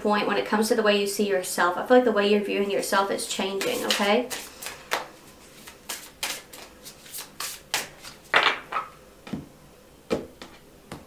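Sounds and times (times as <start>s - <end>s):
cards slapping and riffling: 3.6s - 8.9s.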